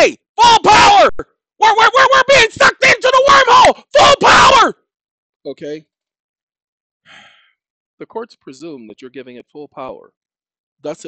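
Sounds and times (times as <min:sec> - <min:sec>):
man sighing: 0:07.1 - 0:07.5.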